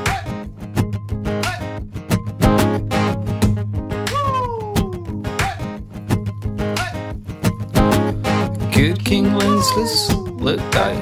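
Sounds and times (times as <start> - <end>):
acoustic guitar music: 0.0 - 11.0
cat meowing: 4.1 - 5.2, 9.3 - 10.7.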